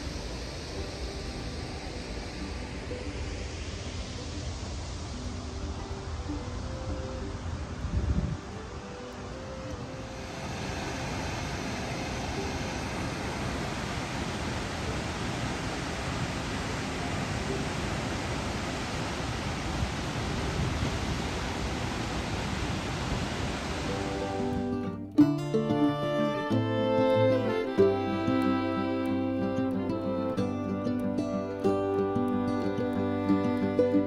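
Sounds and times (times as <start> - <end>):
faint music: 0.0 - 34.0
waterfall rushing: 0.0 - 34.0.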